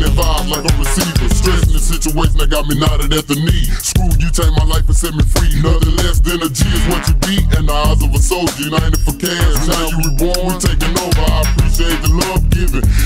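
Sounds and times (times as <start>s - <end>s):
slowed rapping over a beat: 0.0s - 13.0s.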